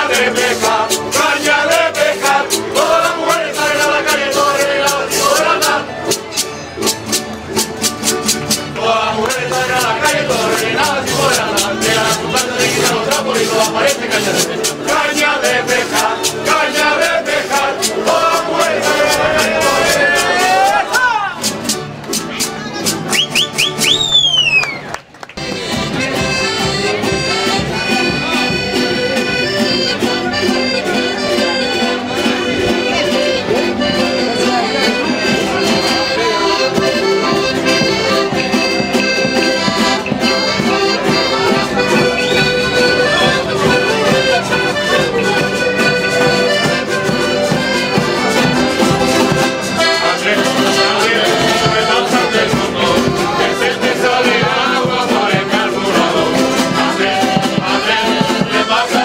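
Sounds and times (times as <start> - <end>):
folk string group playing: 0.0 - 59.0
voices: 0.0 - 59.0.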